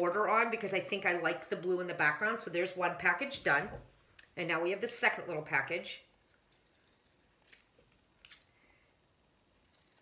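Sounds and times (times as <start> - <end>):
scissors snipping fabric: 9.6 - 10.0.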